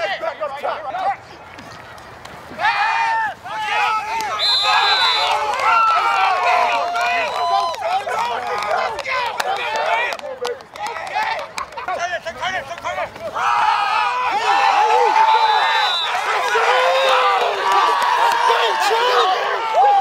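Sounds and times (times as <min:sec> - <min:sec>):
high whistle tone: 0:04.4 - 0:05.4
men shouting: 0:12.4 - 0:20.0.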